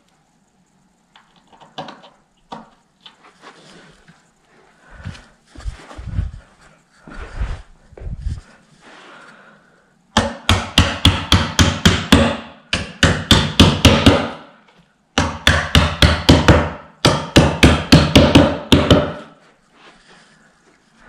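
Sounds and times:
hammer tapping wooden panel: 10.2 - 14.5, 15.2 - 19.3.

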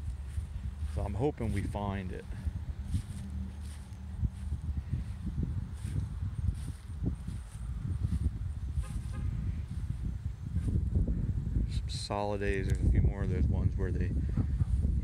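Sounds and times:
footsteps through grass: 0.0 - 11.0
wind buffeting microphone: 0.0 - 15.0.

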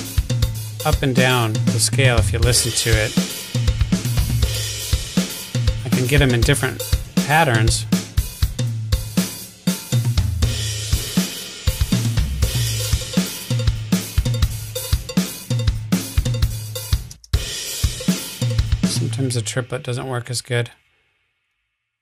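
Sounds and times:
rock drum kit groove: 0.0 - 19.7.

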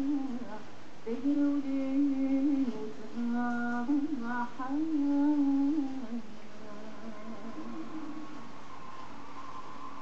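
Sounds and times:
person singing through television: 0.0 - 10.0.

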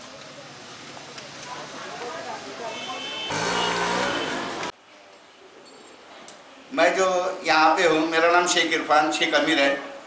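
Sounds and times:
motor vehicle running: 3.3 - 4.7.

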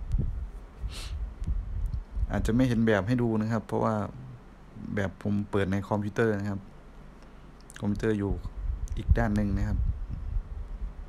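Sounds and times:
short hiss: 0.8 - 1.2.

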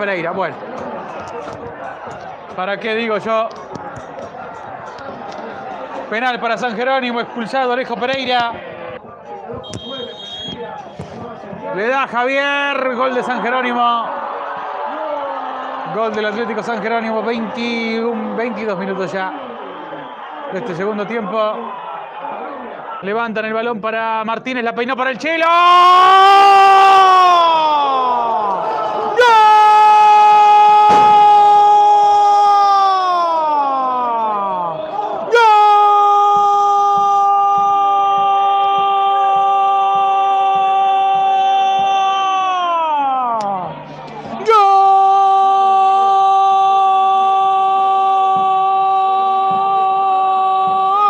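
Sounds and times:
faint crowd voices: 0.0 - 25.2, 36.2 - 45.9
referee's whistle: 9.6 - 11.1.

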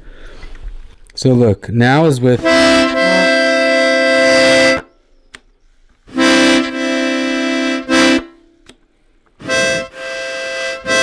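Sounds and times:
accordion chords: 2.4 - 4.9, 6.1 - 8.8, 9.4 - 11.0.

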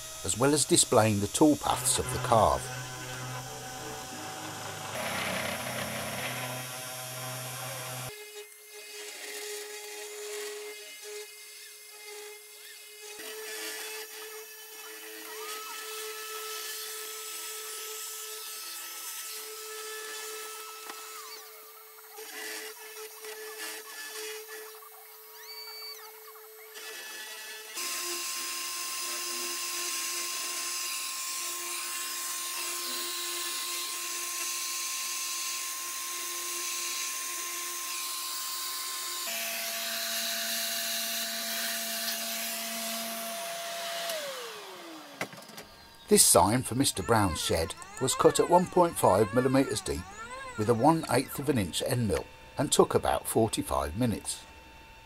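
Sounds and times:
cnc spindle motor whining: 0.0 - 55.0.

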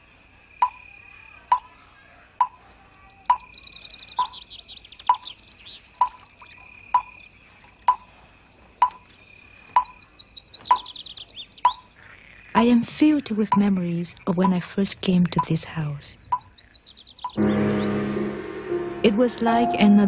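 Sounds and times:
drip-like plops: 6.0 - 8.1
steady thin high tone: 17.4 - 20.0.

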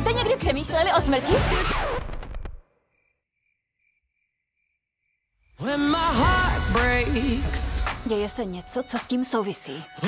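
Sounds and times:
cricket chirps: 2.8 - 5.6
upbeat dance-pop music: 5.6 - 10.0.

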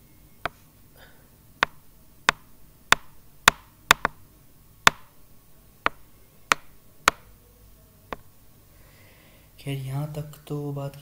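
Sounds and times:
sharp clicks or taps: 1.6 - 4.2, 4.8 - 5.1, 5.8 - 7.3.

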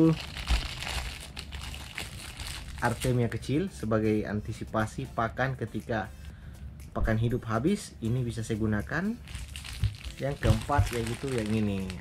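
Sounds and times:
plastic packaging crinkling: 0.0 - 3.2, 9.2 - 12.0.

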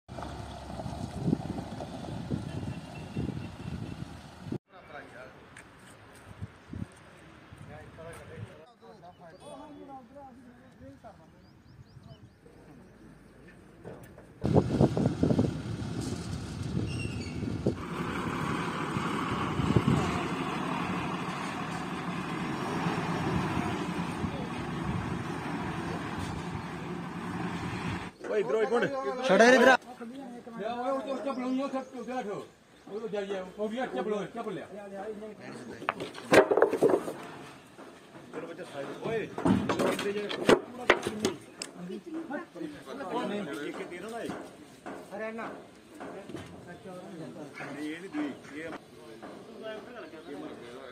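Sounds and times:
truck engine low rumble: 0.1 - 4.6, 13.7 - 28.2
wind buffeting microphone: 0.7 - 4.6, 14.4 - 21.2, 21.8 - 28.1
men's voices: 28.1 - 37.0, 38.2 - 50.9.

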